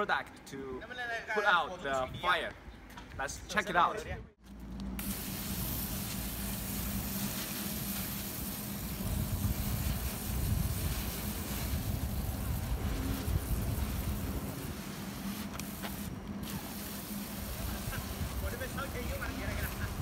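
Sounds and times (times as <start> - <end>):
low hum and rumble: 4.4 - 20.0
fire extinguisher spray hissing: 5.0 - 20.0.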